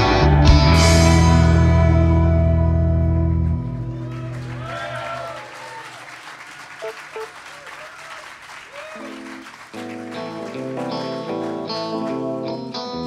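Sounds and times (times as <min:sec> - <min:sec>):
electric guitar riff: 0:00.0 - 0:04.0, 0:09.0 - 0:13.0
rock band playing: 0:00.0 - 0:04.1, 0:09.0 - 0:13.0
audience applauding: 0:03.6 - 0:13.0
audience shouts: 0:03.9 - 0:09.4.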